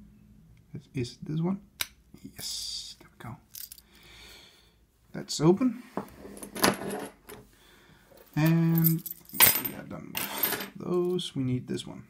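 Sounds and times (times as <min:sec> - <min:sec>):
padlocks and keys clinking: 0:03.5 - 0:04.0, 0:08.4 - 0:09.6.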